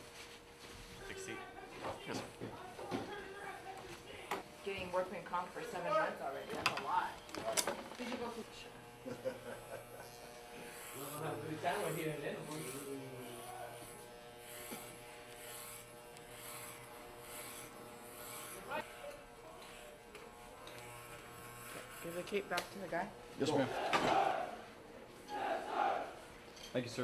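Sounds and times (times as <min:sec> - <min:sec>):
electric hair clippers buzzing: 0:01.2 - 0:24.8.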